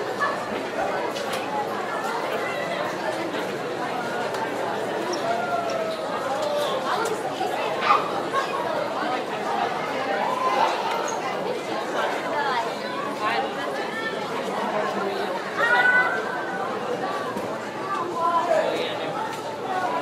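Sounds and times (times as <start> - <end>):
many voices chattering: 0.0 - 20.0.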